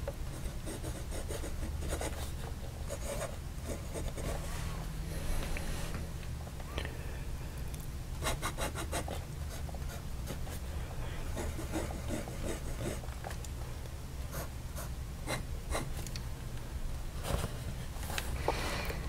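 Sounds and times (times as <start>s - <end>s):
faint low hum: 0.0s - 19.0s
pen nib scratching paper: 11.4s - 13.0s.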